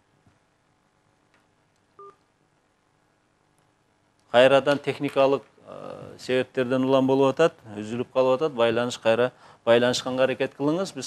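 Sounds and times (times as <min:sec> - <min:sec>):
electronic telephone beep: 0:02.0 - 0:02.2.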